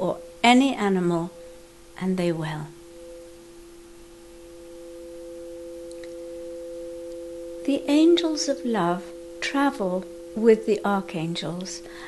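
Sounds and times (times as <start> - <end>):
steady pure tones: 0.0 - 12.0.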